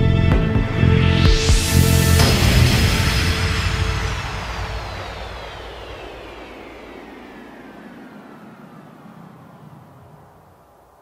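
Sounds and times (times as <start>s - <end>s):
electronic downward whoosh: 0.7s - 10.8s.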